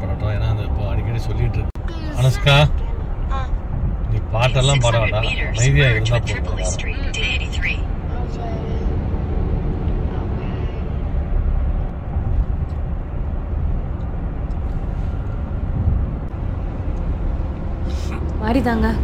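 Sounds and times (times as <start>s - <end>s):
car engine and tyres rumble: 0.0s - 19.0s.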